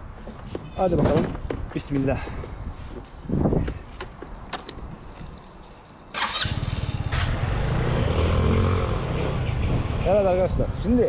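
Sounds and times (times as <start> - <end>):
scooter engine starting and running: 6.2 - 9.9.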